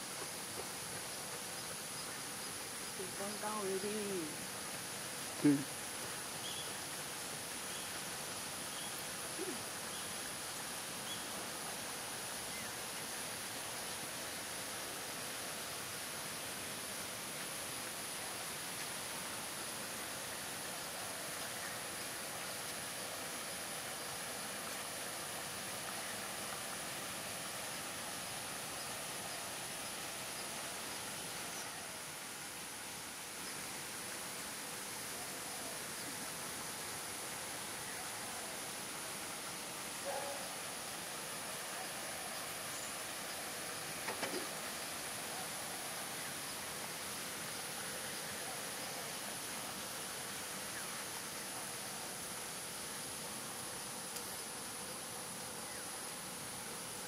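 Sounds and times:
outdoor background hiss: 0:00.0 - 0:57.0.

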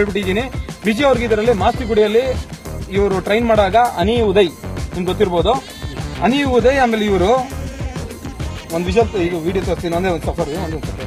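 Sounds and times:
man speaking into microphones: 0:00.0 - 0:11.0
music playing: 0:00.0 - 0:11.0.

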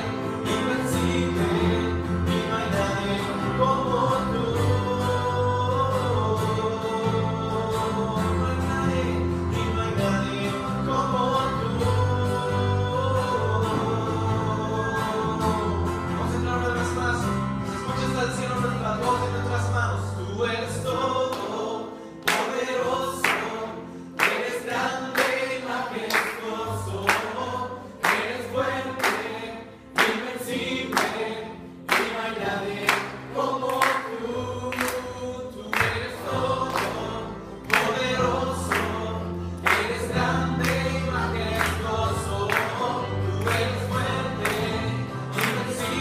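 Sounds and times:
congregation singing: 0:00.0 - 0:46.0
keyboard: 0:00.0 - 0:46.0
strummed acoustic guitar: 0:00.0 - 0:46.0.

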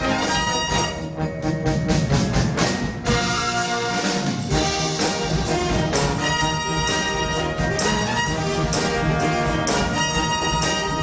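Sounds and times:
drum and percussion strikes: 0:00.0 - 0:11.0
held brass chords: 0:00.0 - 0:11.0.

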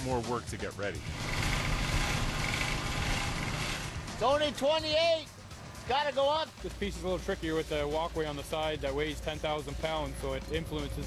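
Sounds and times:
diesel engine running: 0:01.0 - 0:05.9.

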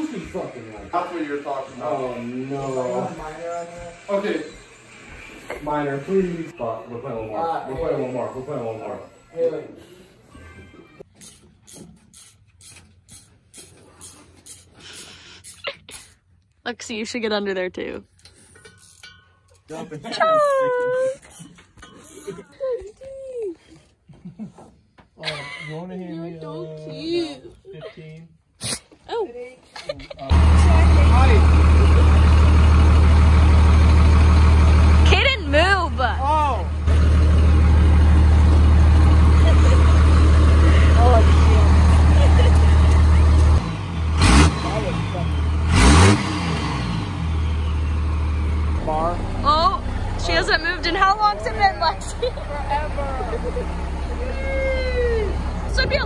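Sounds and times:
vehicle engine revving and idling: 0:30.3 - 0:56.0.

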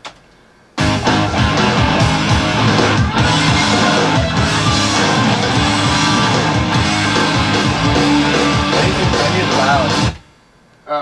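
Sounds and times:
loud electric guitar rock music: 0:00.8 - 0:10.2.

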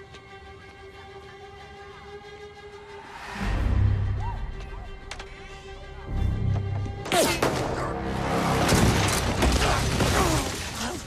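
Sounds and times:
clattering cracking impacts: 0:08.4 - 0:11.0.

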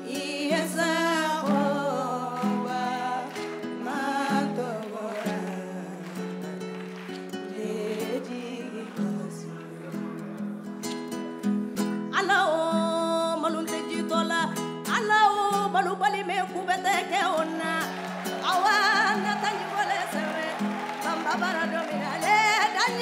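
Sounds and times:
person singing with vibrato: 0:00.0 - 0:06.5, 0:07.4 - 0:10.0, 0:12.1 - 0:23.0
acoustic guitar picked melody: 0:00.0 - 0:23.0.

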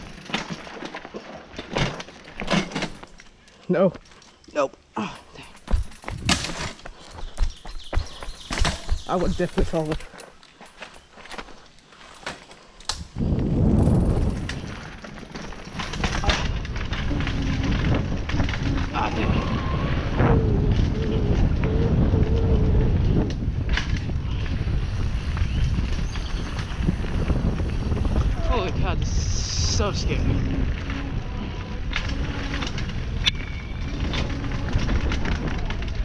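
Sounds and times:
bike tyre and frame rattle: 0:00.0 - 0:04.4, 0:05.0 - 0:36.0
wind rumble on microphone: 0:05.7 - 0:10.0, 0:12.9 - 0:36.0.

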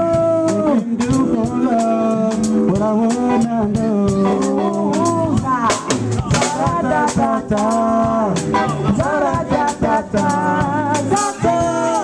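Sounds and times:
drum kit: 0:00.0 - 0:12.0
electric guitar: 0:00.0 - 0:12.0
keyboard playing: 0:00.0 - 0:12.0
woman singing: 0:00.0 - 0:12.0.

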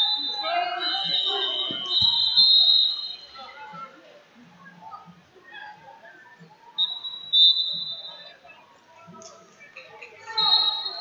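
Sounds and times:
referee's whistle blasts: 0:00.0 - 0:03.6, 0:06.8 - 0:08.3, 0:10.4 - 0:11.0
voices in a hall: 0:00.0 - 0:11.0.

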